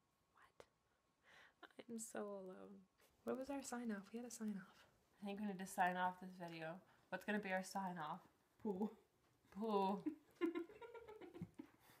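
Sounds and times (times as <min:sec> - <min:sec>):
woman laughing: 0:09.7 - 0:11.9.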